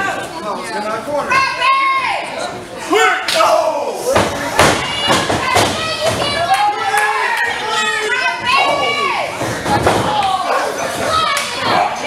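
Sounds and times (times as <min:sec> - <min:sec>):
people shouting: 0:01.4 - 0:12.0.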